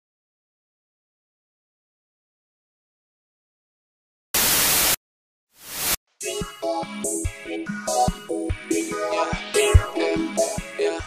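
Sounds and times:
static noise burst: 4.4s - 5.0s, 5.6s - 6.0s
hiss: 5.6s - 6.0s.

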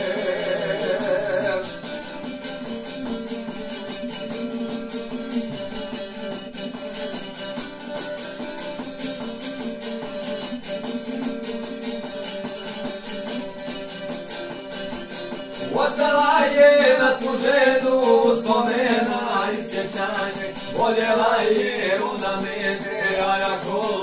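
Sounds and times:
lute picking rapidly: 0.0s - 24.0s.

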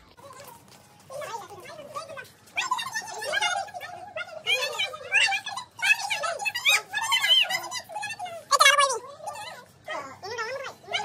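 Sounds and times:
children chattering and calling out: 0.0s - 11.0s
children shouting high-pitched: 0.2s - 11.0s.

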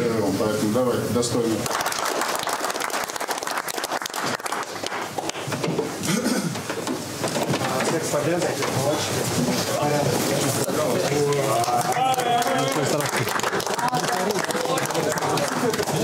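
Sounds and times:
players clapping hands: 1.6s - 6.0s, 10.6s - 16.0s
men calling out and talking: 7.4s - 16.0s.

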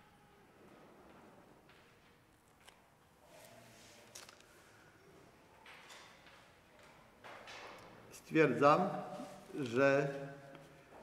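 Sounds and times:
faint soft noise: 0.0s - 7.2s.

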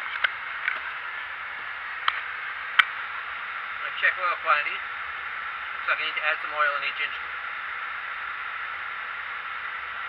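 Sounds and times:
fans airflow hiss: 0.0s - 10.0s.

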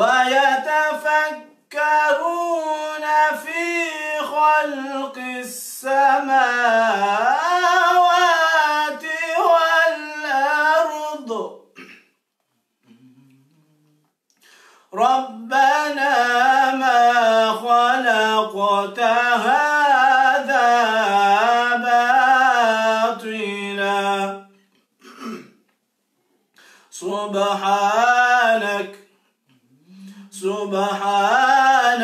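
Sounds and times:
man chanting a recitation: 0.0s - 11.7s, 14.9s - 24.5s, 26.9s - 29.0s, 29.7s - 32.0s
man clearing throat: 11.7s - 12.2s, 25.0s - 25.6s.

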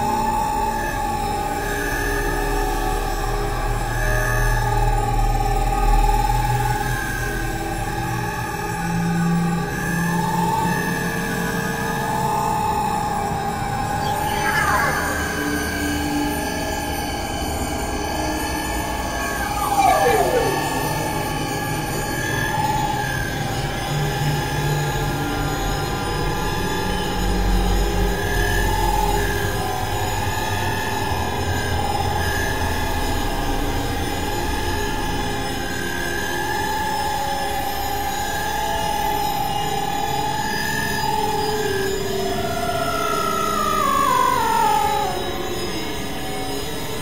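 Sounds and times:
high wavering drone: 13.4s - 23.0s, 42.4s - 46.4s.

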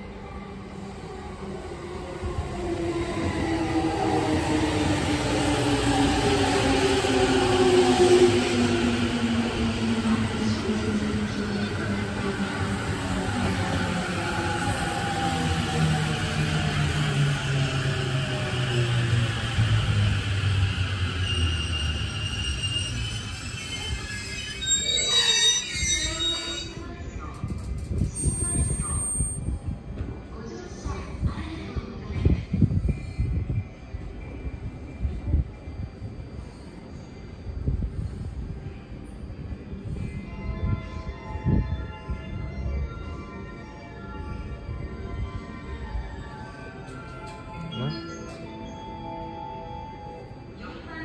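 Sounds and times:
high brake squeals: 21.0s - 26.8s.

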